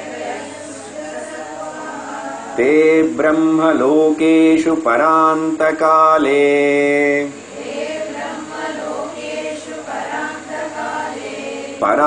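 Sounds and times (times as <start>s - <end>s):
voices chanting together: 0.0s - 3.1s, 7.2s - 12.0s.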